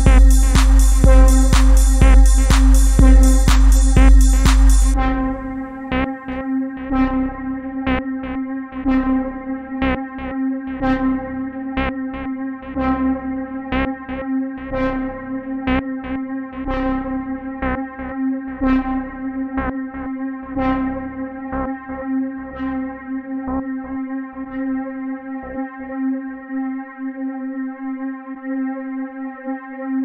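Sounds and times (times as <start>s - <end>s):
sustained low drone: 0.0s - 25.6s.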